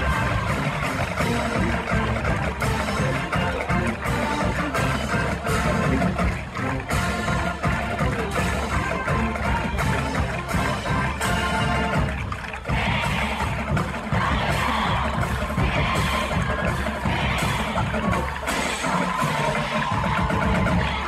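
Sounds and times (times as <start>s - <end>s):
marching band playing: 0.0s - 21.0s.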